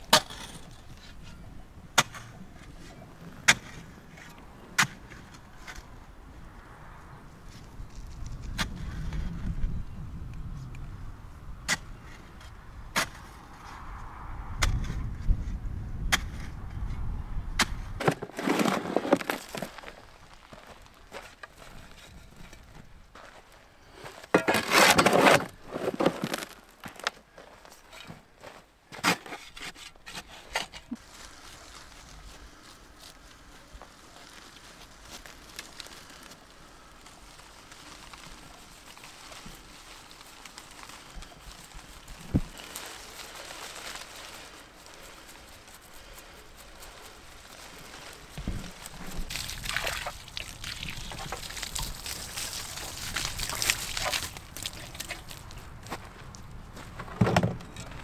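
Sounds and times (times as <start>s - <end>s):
spade scraping soil: 0.1s - 1.4s, 17.6s - 22.8s, 24.0s - 31.4s
soil being tipped: 18.0s - 23.4s, 24.0s - 27.1s, 37.6s - 55.6s.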